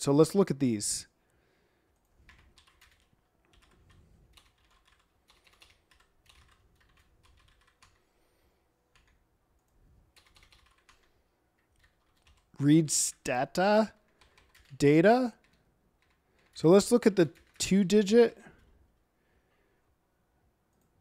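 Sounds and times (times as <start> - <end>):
typing on computer keyboard: 2.0 - 8.1, 8.9 - 12.5, 14.0 - 14.8, 15.4 - 17.8.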